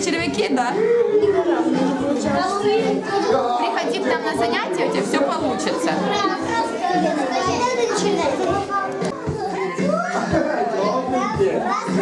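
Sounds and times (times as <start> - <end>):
children chattering and laughing: 0.0 - 12.0.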